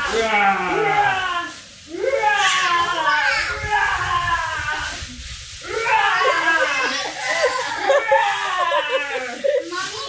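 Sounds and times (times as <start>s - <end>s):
people laughing and squealing: 0.0s - 10.0s.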